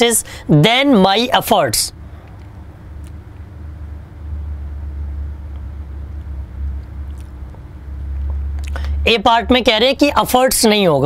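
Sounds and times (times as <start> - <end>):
faint hum: 0.0 - 11.0
low steady rumble: 0.0 - 11.0.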